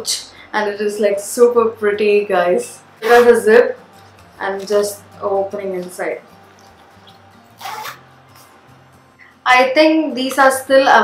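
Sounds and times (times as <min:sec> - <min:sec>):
faint background music: 0:00.0 - 0:11.0
zipper pulled shut: 0:03.0 - 0:03.4, 0:07.5 - 0:08.1.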